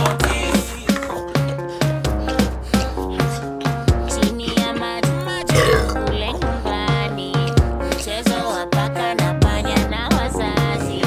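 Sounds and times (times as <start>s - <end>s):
background music: 0.0s - 11.0s
long rough burp: 5.4s - 6.6s.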